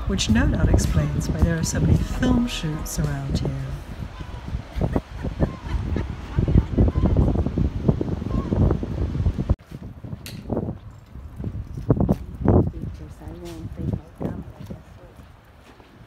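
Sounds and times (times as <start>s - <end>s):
indistinct voices: 0.0s - 5.0s
wind buffeting microphone: 0.0s - 16.0s.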